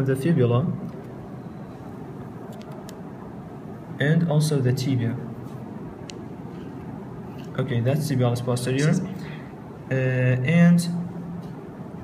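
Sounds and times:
low room hiss: 0.0 - 12.0.

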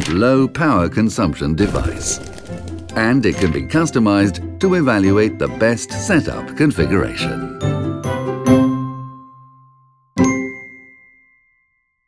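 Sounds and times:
musical jingle: 1.6 - 5.6
bell-like chime: 8.7 - 12.0.

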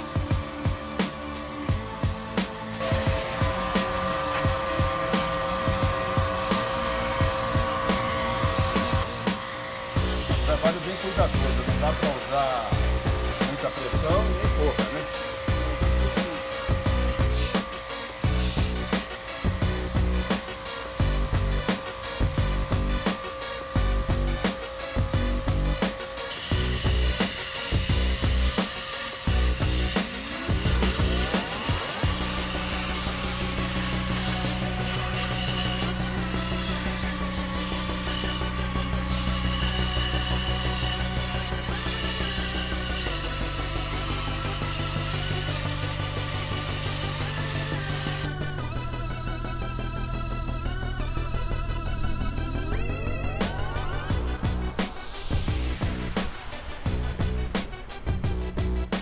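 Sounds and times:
background music: 0.0 - 59.0
pressure washer spraying water: 0.0 - 59.0.

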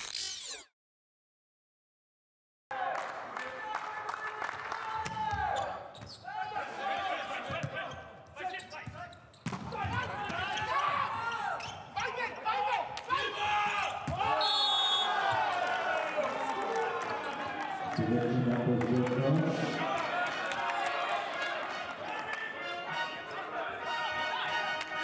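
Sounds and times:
players shouting: 4.8 - 8.5, 9.7 - 18.0
volleyball hits: 14.0 - 14.4.

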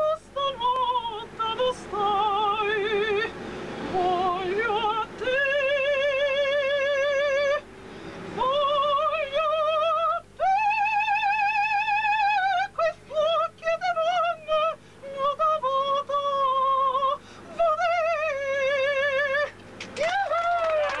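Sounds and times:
woman singing operatic style: 0.0 - 3.3, 3.9 - 7.6, 8.4 - 21.0
applause: 19.6 - 21.0.

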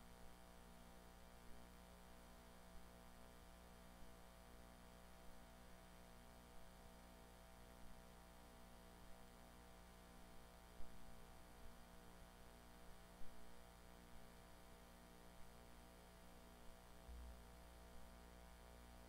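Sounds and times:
electrical mains hum: 0.0 - 19.0.

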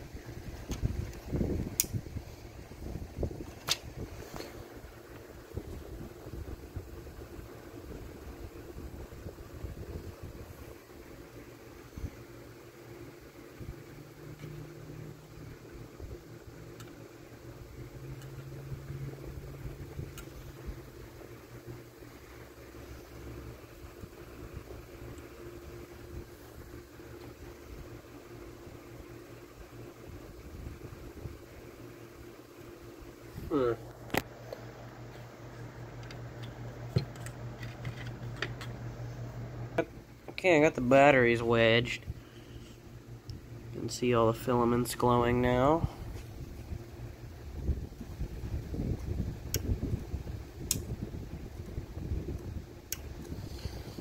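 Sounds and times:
steady low hum: 0.0 - 54.0
sharp clicks: 1.8 - 2.0
faint handling clicks: 16.7 - 17.0
microphone handling rumble: 47.5 - 54.0.

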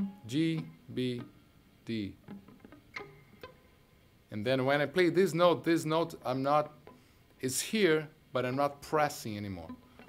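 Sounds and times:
electric guitar plucked notes: 0.0 - 4.9.

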